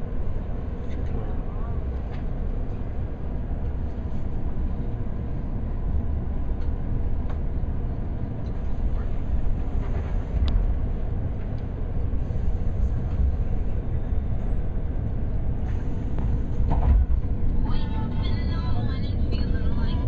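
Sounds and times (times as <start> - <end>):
train carriage rumble: 0.0 - 20.0.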